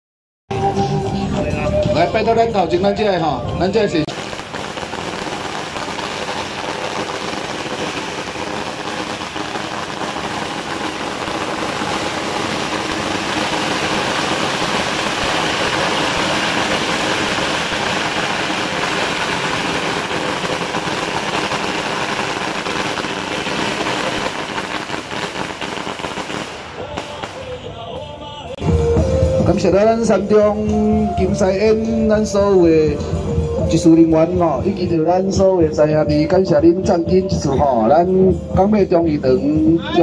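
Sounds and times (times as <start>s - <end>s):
firecrackers crackling: 4.0s - 28.5s.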